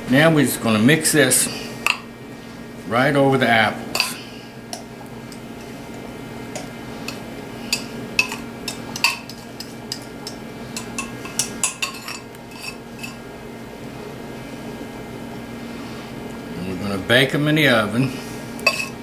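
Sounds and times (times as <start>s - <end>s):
low steady hum: 0.0s - 19.0s
knife scraping glass bowl: 10.8s - 13.2s, 18.6s - 19.0s.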